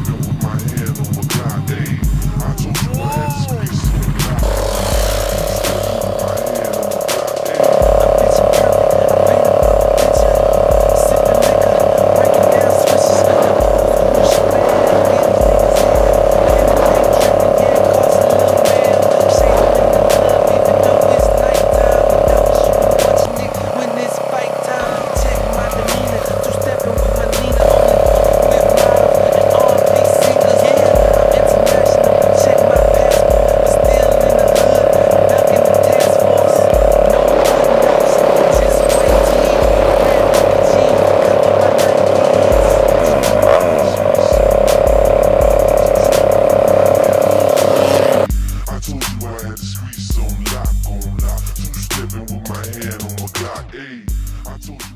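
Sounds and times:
heavy repeating bass line: 0.0s - 54.9s
hip-hop backing track: 0.0s - 54.9s
steady held tone: 4.3s - 48.3s.

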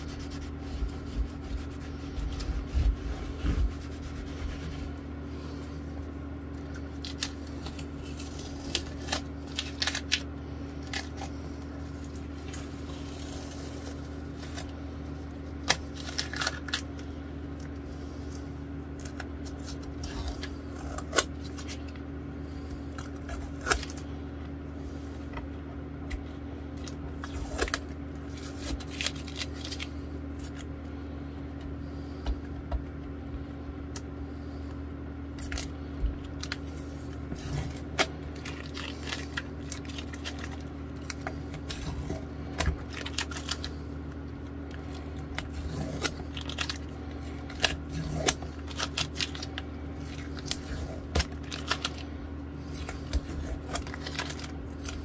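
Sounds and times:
cloth rubbing: 0.0s - 5.0s
low hum: 0.0s - 55.0s.

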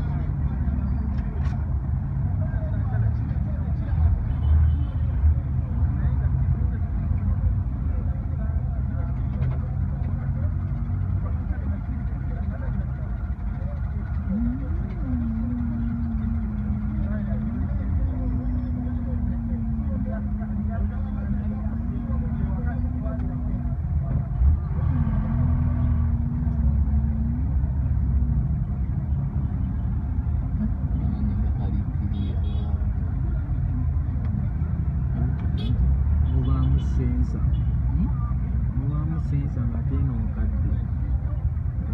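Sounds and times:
idling engines low rumble: 0.0s - 41.9s
held low tone: 14.0s - 32.6s.

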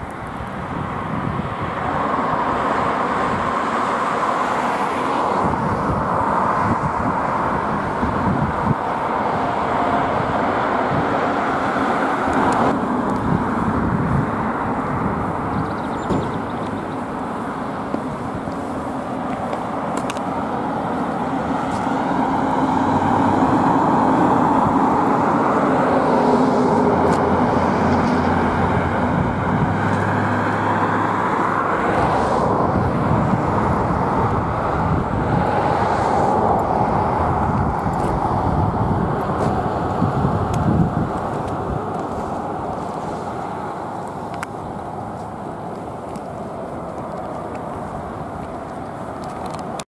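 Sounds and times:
vehicle passing with engine hum: 0.0s - 49.8s
road traffic noise: 0.0s - 49.9s.

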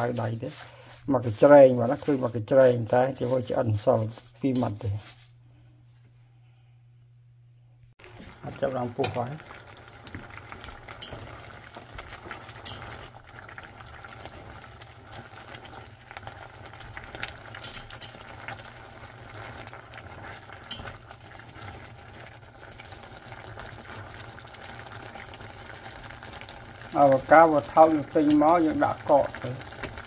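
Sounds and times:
water boiling in a saucepan: 0.0s - 5.4s, 8.0s - 30.0s
chopsticks clicking against pot: 17.6s - 18.2s.

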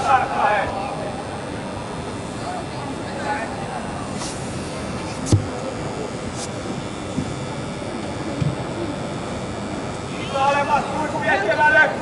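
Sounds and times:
hall background hum: 0.0s - 11.2s.

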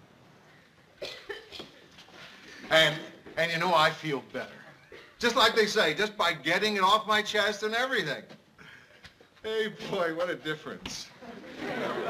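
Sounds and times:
person coughing quietly: 1.0s - 1.8s.

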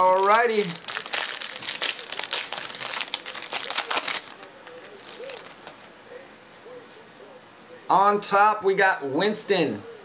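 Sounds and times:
foil wrapper crinkling: 0.0s - 5.9s.

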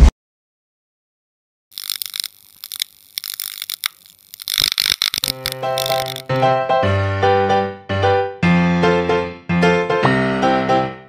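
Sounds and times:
neon sign crackling and buzzing: 1.8s - 6.4s.

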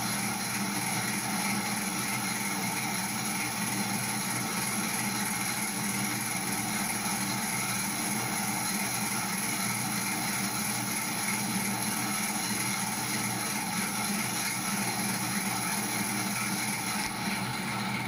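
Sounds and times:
electric motor humming and whining: 0.0s - 18.0s.

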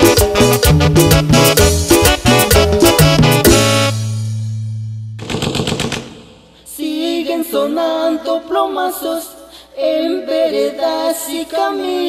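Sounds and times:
automatic gunfire burst: 5.2s - 6.6s.

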